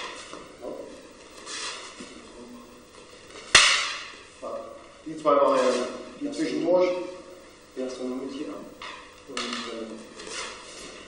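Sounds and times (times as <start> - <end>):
wooden staffs striking: 3.4 - 4.2.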